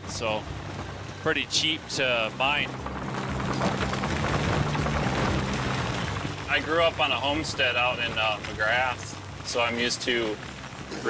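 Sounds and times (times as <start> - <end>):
background music: 0.0 - 11.0
bulldozer diesel engine under load: 0.0 - 11.0
crackle of dirt being pushed: 0.0 - 11.0.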